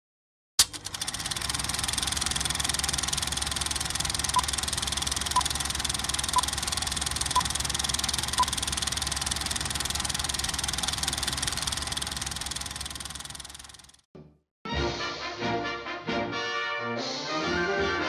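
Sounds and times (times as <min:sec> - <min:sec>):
film projector clattering: 0:00.6 - 0:14.0.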